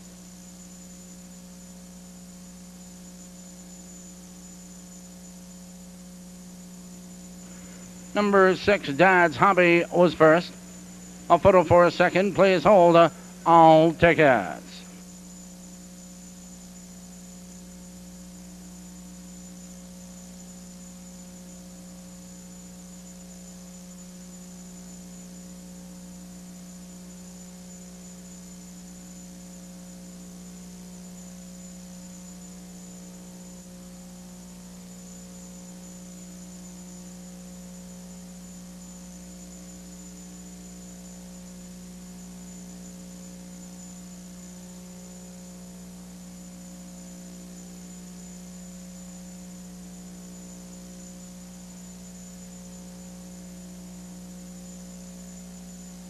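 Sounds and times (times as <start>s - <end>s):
electrical mains hum: 0.0s - 56.0s
faint hiss: 7.4s - 15.0s.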